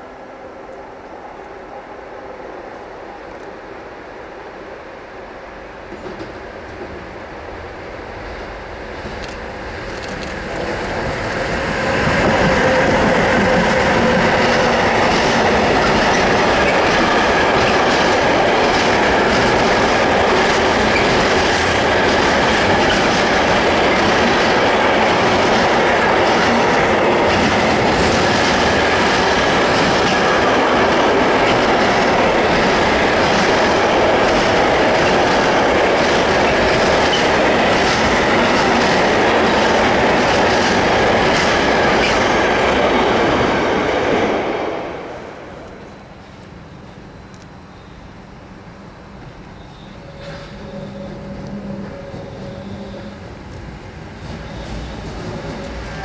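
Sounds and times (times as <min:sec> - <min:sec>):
freight train rumbling past: 0:00.0 - 0:56.0
wheels clattering over rails: 0:10.1 - 0:43.2
faint high wheel squeal: 0:46.6 - 0:48.2, 0:49.2 - 0:53.3, 0:54.4 - 0:55.7.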